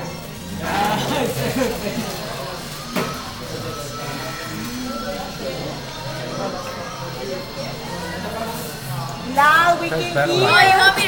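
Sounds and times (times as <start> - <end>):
background chatter of voices: 0.0 - 11.0
music playing: 0.0 - 11.0.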